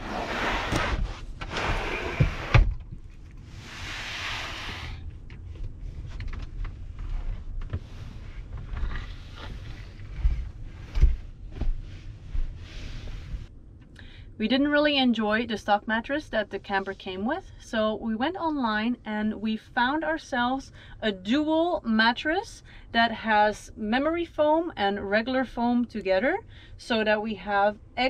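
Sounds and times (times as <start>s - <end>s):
camper bed scraping pulls: 0.0s - 2.7s.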